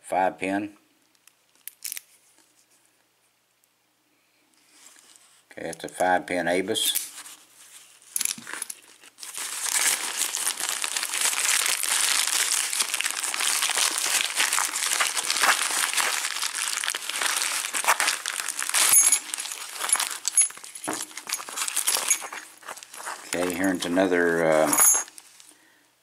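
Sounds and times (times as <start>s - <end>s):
bubble wrap crinkling: 7.1s - 25.6s.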